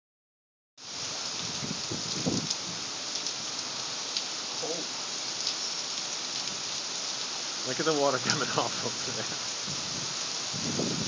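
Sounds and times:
heavy rain on street: 0.8s - 11.0s.

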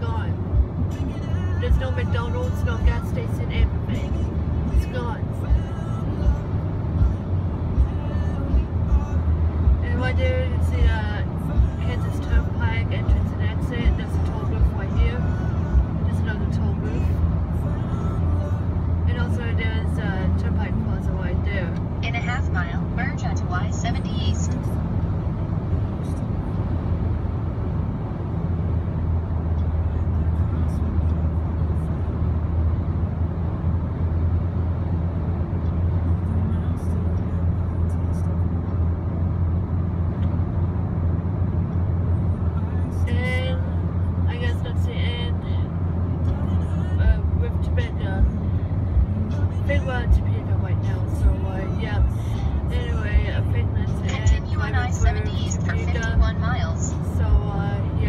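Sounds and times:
road and engine noise in car: 0.0s - 58.0s
person speaking: 49.7s - 58.0s.

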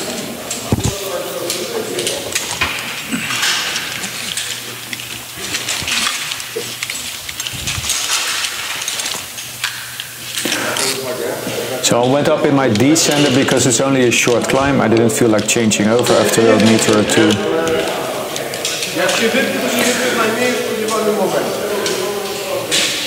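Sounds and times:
faint voices: 0.0s - 9.4s, 10.2s - 23.0s
rope and webbing rustling: 0.0s - 11.9s
carabiners clicking and clinking: 0.5s - 11.0s.

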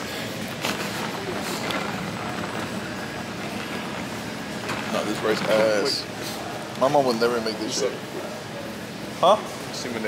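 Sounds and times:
indoor store background noise: 0.0s - 10.0s.

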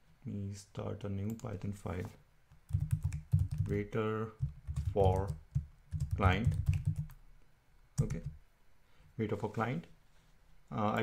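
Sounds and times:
keyboard typing clatter: 2.7s - 3.8s, 4.4s - 7.2s.

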